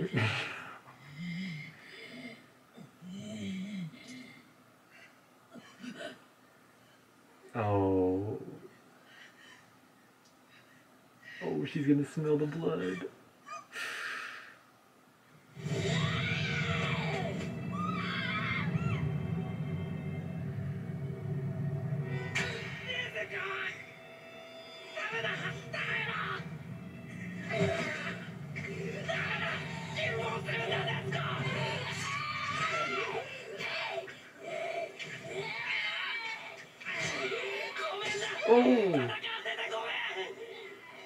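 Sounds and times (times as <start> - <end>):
low rumbling music: 15.5 - 33.9
high strained scream: 15.5 - 38.8
wavering cry: 15.7 - 20.0.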